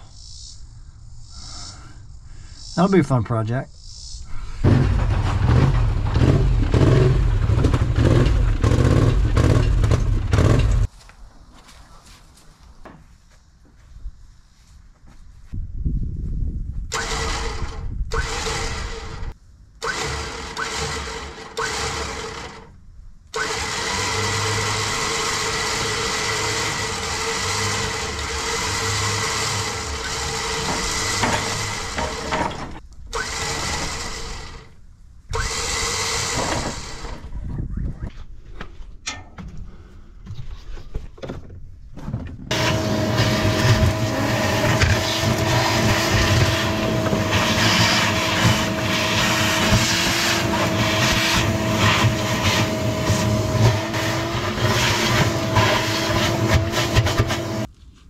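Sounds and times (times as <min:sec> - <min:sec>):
shop vacuum whining: 0:23.4 - 0:37.2, 0:42.5 - 0:57.7.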